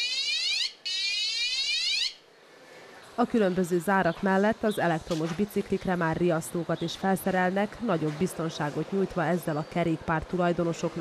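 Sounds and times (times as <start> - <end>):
electronic alarm siren sweeping upward: 0.0 - 2.2.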